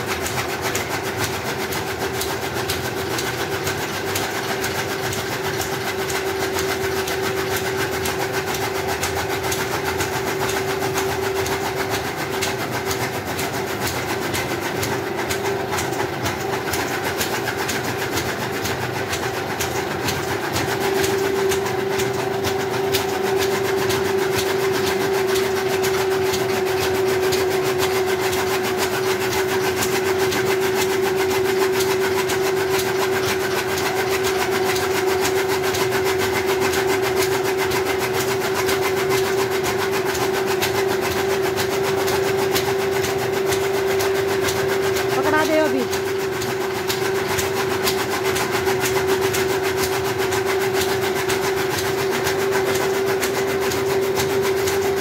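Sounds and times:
machine humming with fast clatter: 0.0 - 55.0.

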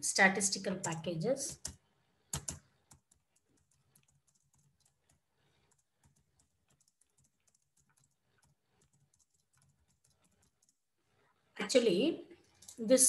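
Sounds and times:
soft keyboard typing: 0.5 - 11.4, 12.4 - 13.0.

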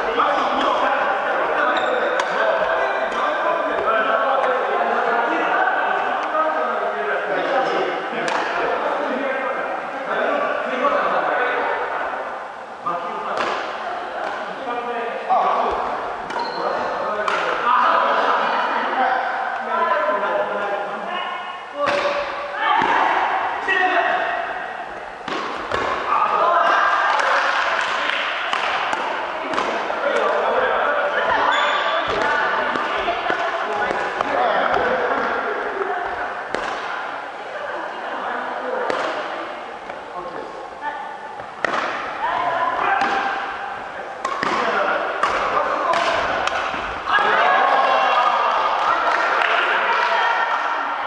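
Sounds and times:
chatter of voices: 0.0 - 51.0
racket hitting shuttlecock: 2.2 - 2.4, 8.3 - 8.6, 13.4 - 14.5, 17.2 - 17.6, 21.8 - 23.1, 25.2 - 26.2, 27.2 - 30.4, 32.0 - 35.3, 36.5 - 37.1, 38.9 - 40.0, 41.4 - 42.2, 42.8 - 47.1.

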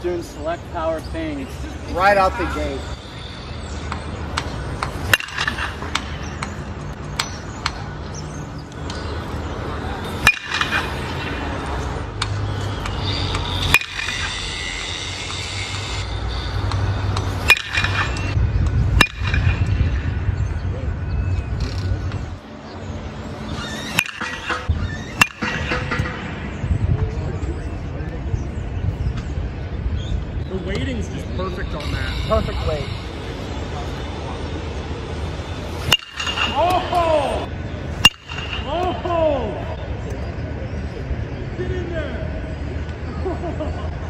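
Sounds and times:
bat pinging on baseball: 16.7 - 18.4, 23.9 - 26.3.

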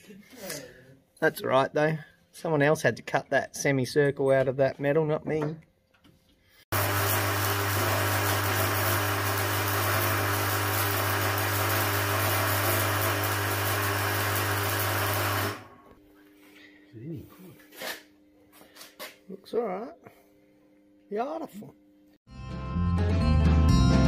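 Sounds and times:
welder crackling buzz: 6.7 - 16.0.

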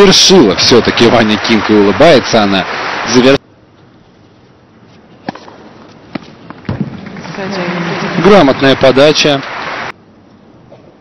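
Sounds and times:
crowd applause: 0.0 - 3.4, 7.0 - 9.9
tennis ball struck by racquet: 5.2 - 7.2.

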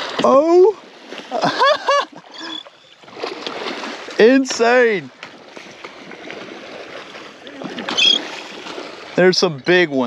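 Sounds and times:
water around a boat: 0.0 - 10.0
wind: 0.0 - 10.0.

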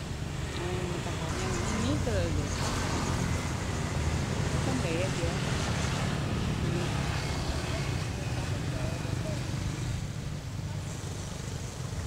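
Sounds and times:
faint distant voices: 6.5 - 12.0.

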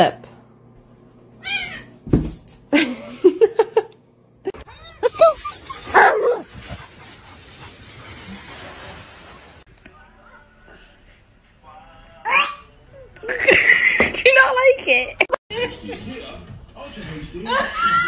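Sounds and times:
steady rustling noise: 5.6 - 9.7.

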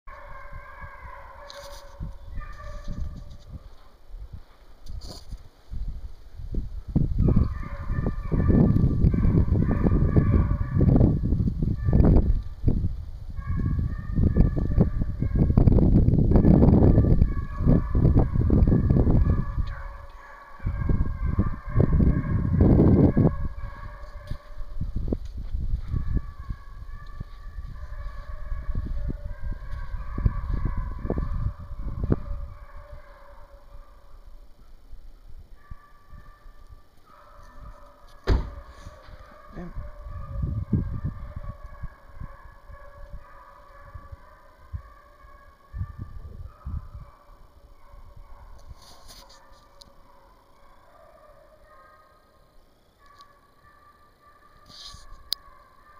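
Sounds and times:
hounds baying: 0.1 - 4.0, 7.2 - 11.0, 16.8 - 24.7, 25.8 - 34.3, 35.6 - 55.9
low microphone rumble: 5.8 - 36.2.

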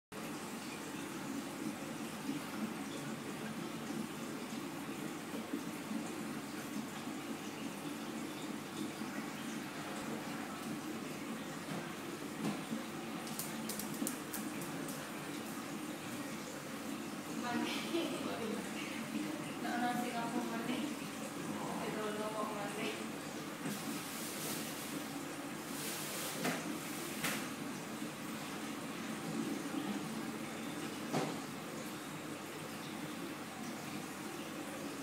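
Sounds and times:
water rushing in aquarium: 0.2 - 35.0.

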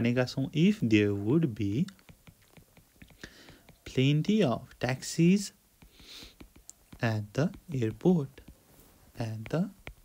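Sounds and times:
stylus tapping on glass screen: 1.6 - 10.0
soft whispered breath: 3.1 - 3.8, 5.8 - 6.4.

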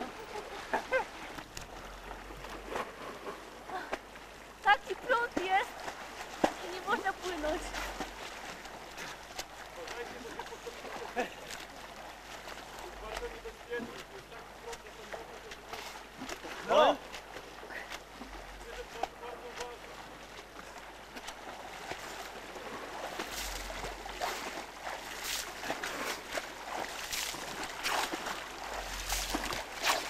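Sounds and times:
people shouting across water: 16.6 - 17.1.

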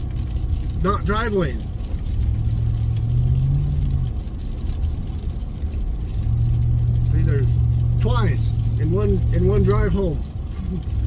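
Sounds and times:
car engine hum: 0.0 - 11.0
road rumble: 0.0 - 11.0.

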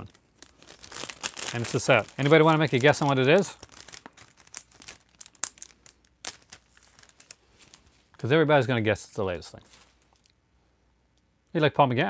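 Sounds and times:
wrapping paper crinkling and tearing: 0.0 - 8.2.

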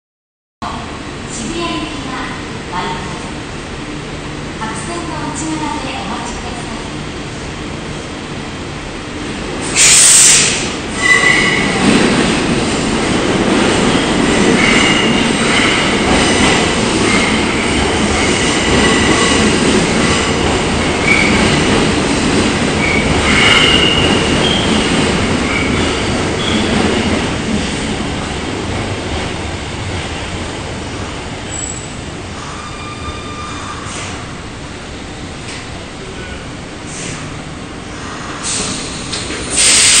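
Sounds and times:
subway train running rumble: 0.6 - 40.0
train wheels squealing on rails: 9.7 - 11.8, 13.8 - 15.9, 21.0 - 21.5, 22.8 - 26.8, 31.4 - 34.4, 38.1 - 40.0.

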